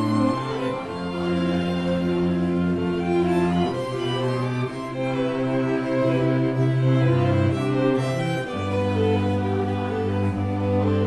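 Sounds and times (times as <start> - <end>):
string quartet playing slow chords: 0.0 - 11.0.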